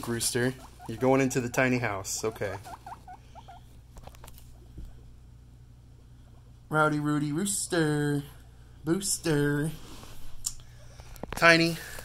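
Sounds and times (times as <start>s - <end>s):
guinea pig squeaking: 0.0s - 4.6s.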